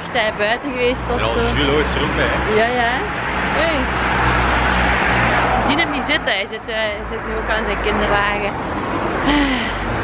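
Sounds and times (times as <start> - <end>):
car passing on road: 0.0 - 10.0.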